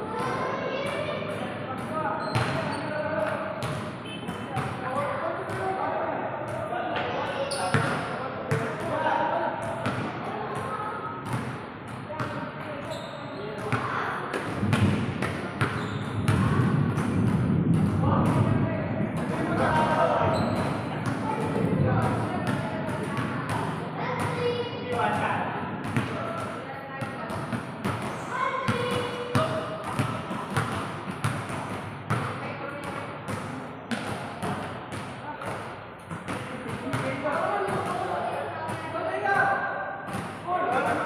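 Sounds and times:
basketball bouncing on court: 0:01.8 - 0:04.8, 0:07.5 - 0:09.0, 0:09.6 - 0:18.6, 0:19.2 - 0:38.1, 0:40.1 - 0:40.8
basketball bouncing on hard floor: 0:07.7 - 0:08.9, 0:13.6 - 0:18.4, 0:28.7 - 0:38.1
voices talking: 0:18.0 - 0:30.0.

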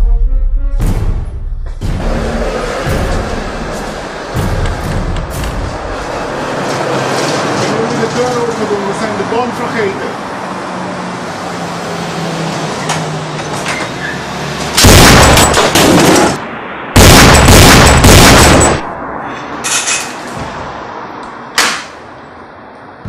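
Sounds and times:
sharp knocks: 0:00.9 - 0:06.1
loud steady background noise: 0:01.6 - 0:23.0.

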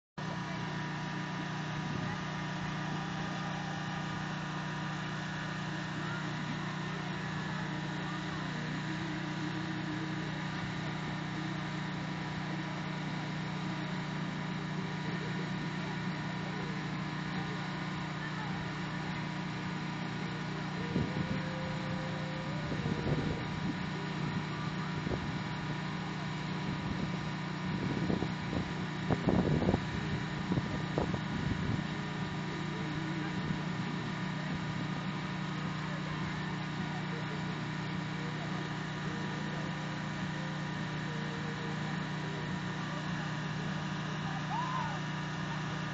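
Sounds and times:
generator engine humming: 0:00.2 - 0:45.9
voices: 0:00.2 - 0:45.9.

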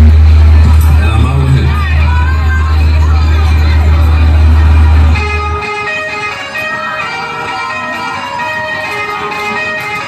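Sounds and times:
low bass drone: 0:00.0 - 0:05.6
crowd voices: 0:00.0 - 0:10.0
electric guitar notes ringing: 0:00.0 - 0:10.0.

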